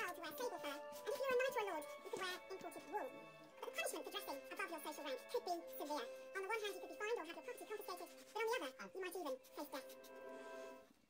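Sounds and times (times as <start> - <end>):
person speaking: 0.0 - 10.2
background music: 0.0 - 11.0.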